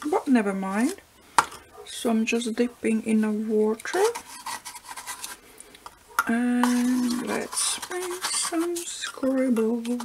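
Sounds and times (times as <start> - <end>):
pencil scribbling on paper: 6.6 - 9.3.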